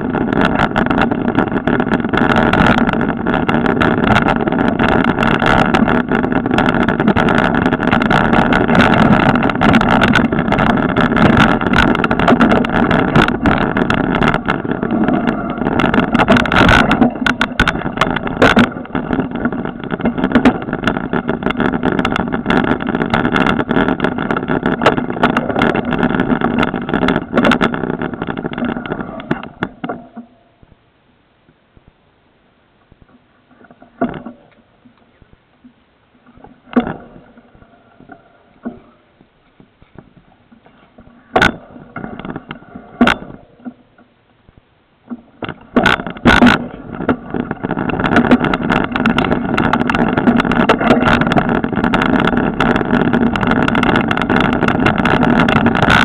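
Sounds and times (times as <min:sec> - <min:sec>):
bike rattles and knocks: 0:00.0 - 0:30.7, 0:33.0 - 0:44.2, 0:45.0 - 0:56.0
bike tyres and wind rumble: 0:00.0 - 0:56.0.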